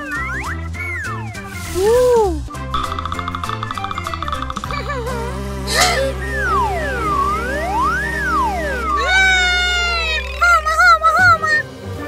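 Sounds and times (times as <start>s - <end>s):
cartoon swooping pitch glides: 0.0s - 11.6s
high-pitched falling cry: 5.7s - 6.2s, 7.8s - 11.0s.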